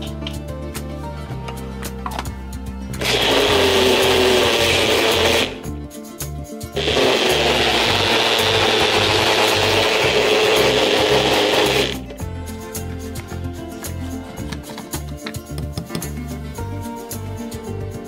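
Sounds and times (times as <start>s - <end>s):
blender motor running: 3.0s - 5.7s, 6.8s - 12.1s.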